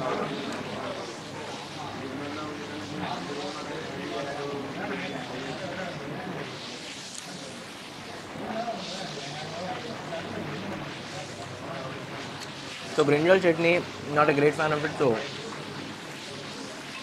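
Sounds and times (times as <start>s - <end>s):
steady room noise: 0.0s - 17.0s.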